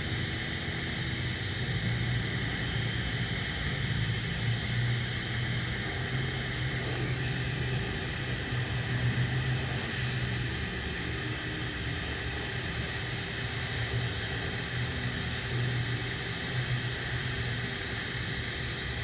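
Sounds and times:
constant low hum: 0.0 - 19.0
welding arc hissing and buzzing: 0.0 - 19.0.

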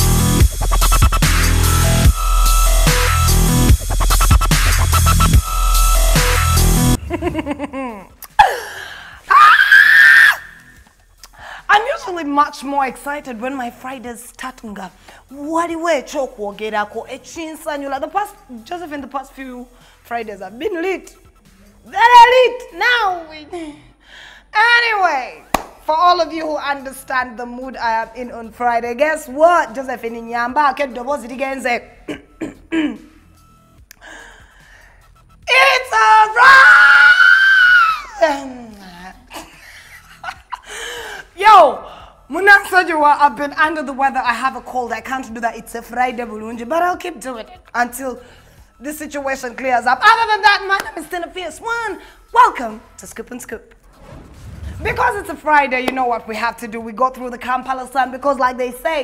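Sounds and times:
woman screaming: 9.3 - 10.6, 36.0 - 39.0.

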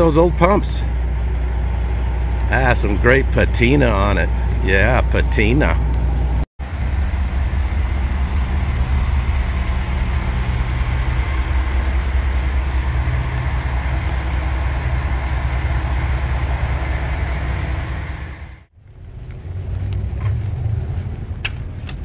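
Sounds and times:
low rumble of street traffic: 0.0 - 22.0.

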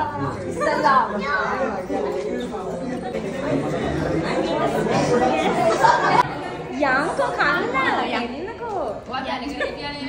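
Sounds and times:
party chatter: 0.0 - 10.0.

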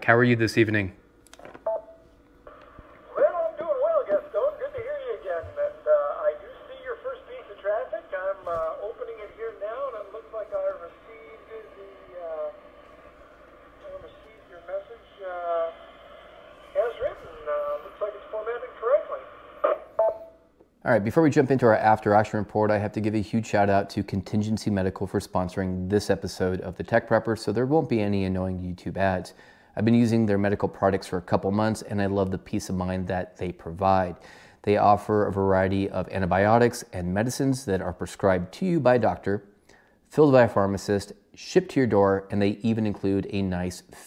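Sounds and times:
radio microphone clicks: 1.2 - 3.1
radio squelch hiss: 2.4 - 20.0.

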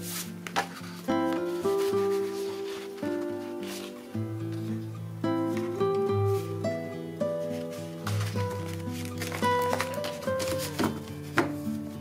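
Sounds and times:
paper sheets handled: 0.0 - 4.9, 5.5 - 12.0
acoustic guitar music: 0.0 - 12.0.

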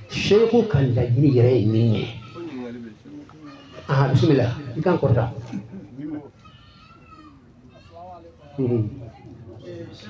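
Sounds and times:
man speaking: 0.0 - 6.4
faint high-pitched voices: 1.4 - 5.3, 6.2 - 10.0.

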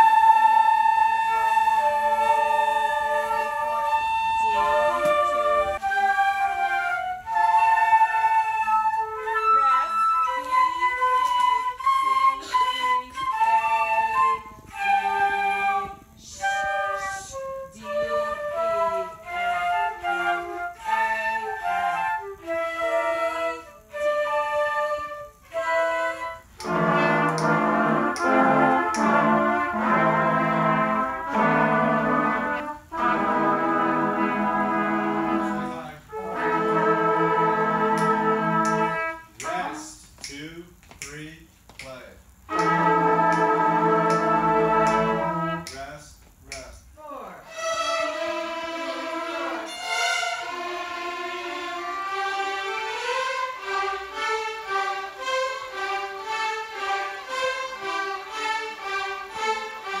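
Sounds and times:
flutes playing a melody: 0.0 - 39.9, 42.5 - 46.0, 47.5 - 60.0
trumpets and trombones playing: 0.0 - 39.9, 42.5 - 46.0, 47.4 - 60.0.

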